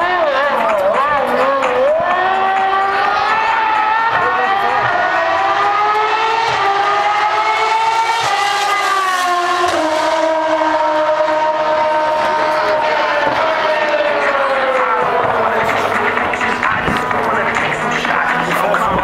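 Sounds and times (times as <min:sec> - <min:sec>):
race car engine passing at high revs: 0:00.0 - 0:19.0.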